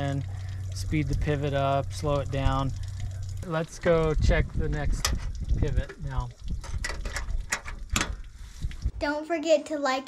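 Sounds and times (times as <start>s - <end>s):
low rumble: 0.0s - 9.0s.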